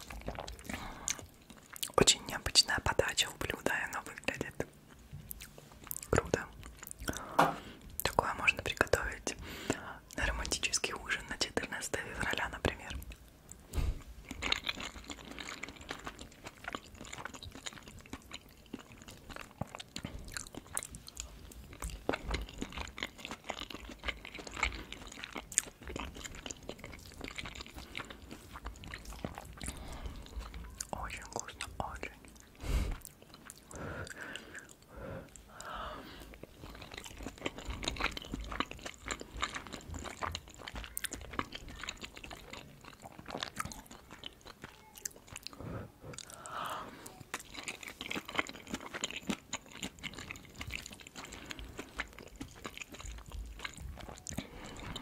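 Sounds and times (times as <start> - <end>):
close chewing with mouth sounds: 0.0 - 55.0.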